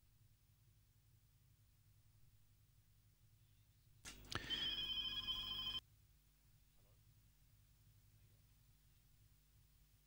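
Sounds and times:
bell-like ringing: 0:04.3 - 0:05.8.

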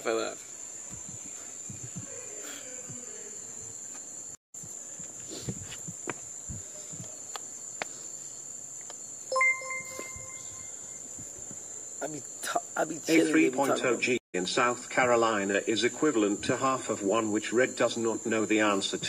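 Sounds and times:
crickets chirping: 0:00.0 - 0:19.0
short beep: 0:09.3 - 0:10.9.

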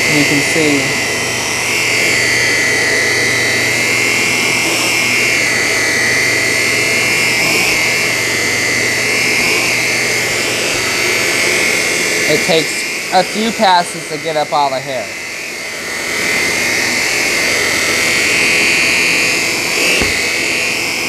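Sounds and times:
vacuum cleaner motor whine: 0:00.0 - 0:21.0.

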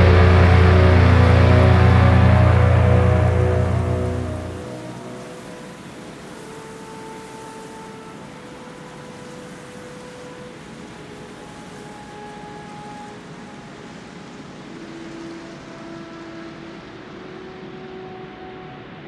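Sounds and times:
hiss-like noise wash: 0:00.0 - 0:19.0.

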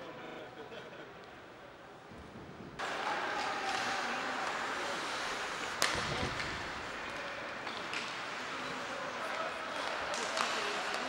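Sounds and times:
rink and crowd noise hiss: 0:00.1 - 0:11.0.

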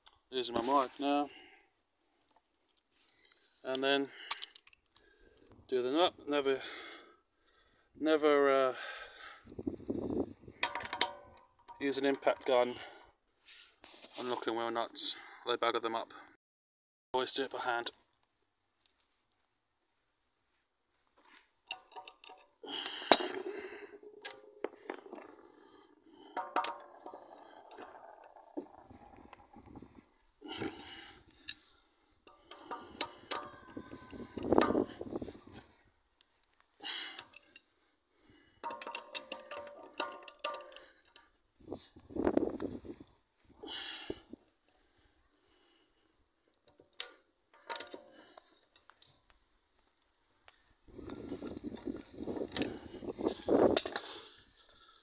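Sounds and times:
socket wrench clinking on bolts: 0:10.6 - 0:11.9, 0:21.7 - 0:25.4, 0:38.6 - 0:41.2, 0:53.7 - 0:54.2.

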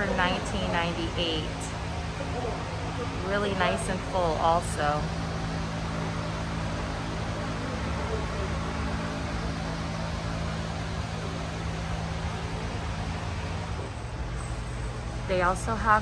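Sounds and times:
electric fan rushing: 0:00.0 - 0:16.0
low constant hum: 0:00.0 - 0:16.0.

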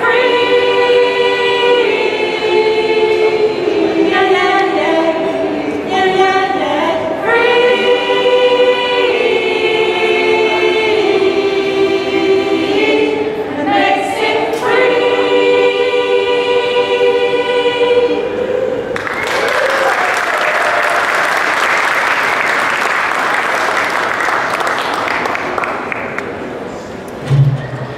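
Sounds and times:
mixed choir singing: 0:00.0 - 0:25.4
applause: 0:19.0 - 0:26.3.

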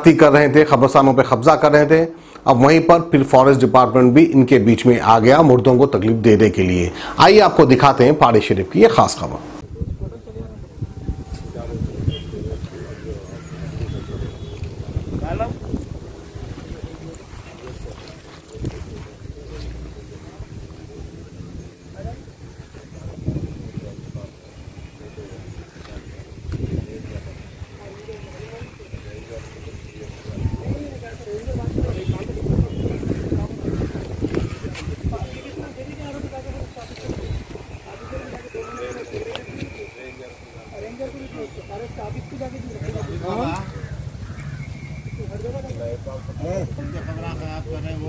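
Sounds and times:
wind buffeting microphone: 0:06.8 - 0:40.7.

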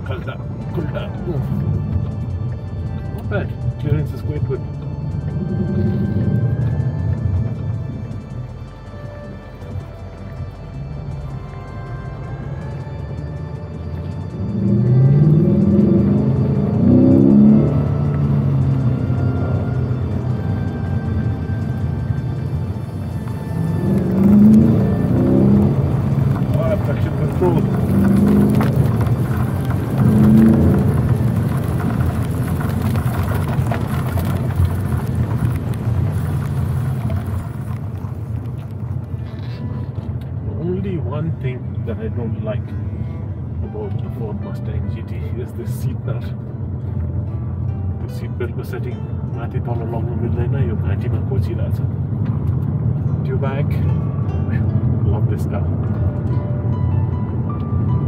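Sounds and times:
car engine accelerating hard: 0:00.0 - 0:58.0
steady low rumble: 0:00.0 - 0:58.0.

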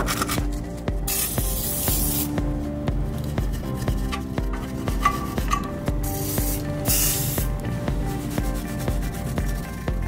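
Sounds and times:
aerosol can spraying: 0:01.1 - 0:02.4, 0:06.0 - 0:07.6.

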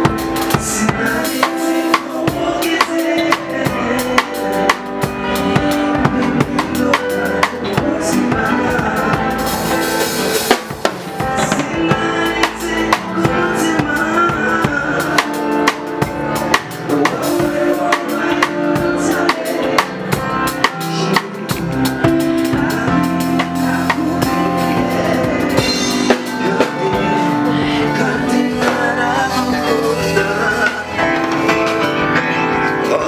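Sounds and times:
drum kit beat: 0:00.0 - 0:33.0
electric guitar: 0:00.0 - 0:33.0.

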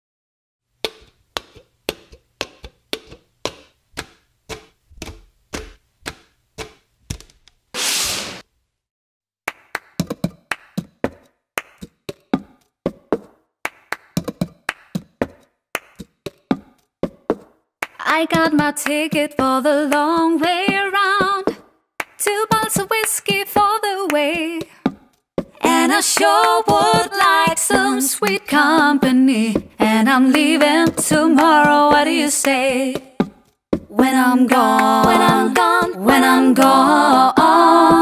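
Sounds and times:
plastic cups hitting tabletop: 0:00.8 - 0:08.4, 0:09.5 - 0:18.0
brief hiss: 0:07.8 - 0:08.4
hand claps: 0:09.5 - 0:12.2, 0:13.2 - 0:16.6, 0:17.3 - 0:19.2, 0:21.4 - 0:25.0, 0:26.2 - 0:28.9, 0:30.3 - 0:33.3.

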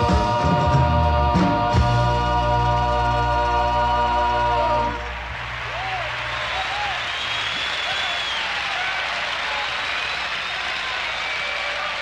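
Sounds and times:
audience applauding and cheering: 0:03.4 - 0:12.0
people shouting: 0:05.4 - 0:09.8.

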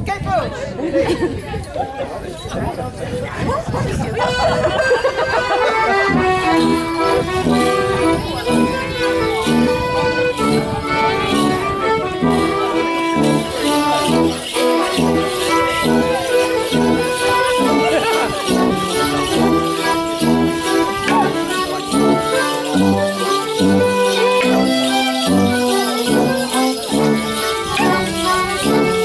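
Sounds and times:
accordion playing dance tune: 0:04.2 - 0:29.0.

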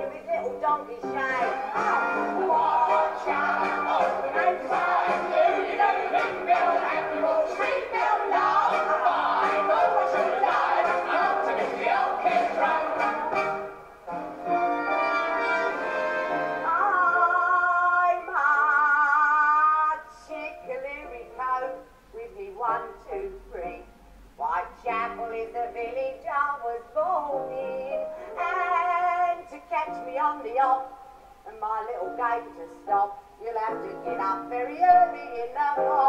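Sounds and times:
woman singing operatically: 0:00.0 - 0:13.3, 0:16.6 - 0:36.0.

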